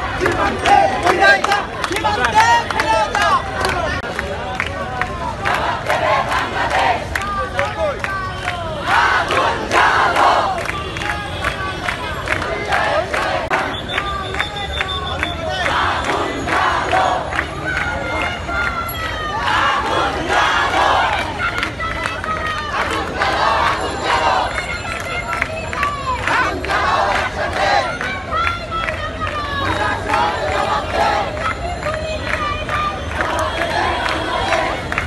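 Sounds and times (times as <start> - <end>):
crowd of protesters shouting: 0.0 - 35.0.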